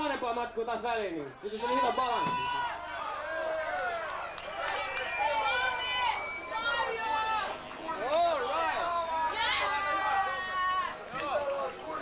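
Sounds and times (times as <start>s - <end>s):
overlapping crowd voices: 1.3s - 12.0s.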